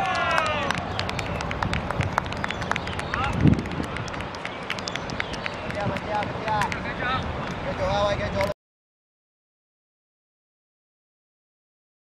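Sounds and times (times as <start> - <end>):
players shouting: 0.0 - 1.2
sharp claps and taps: 0.0 - 7.8.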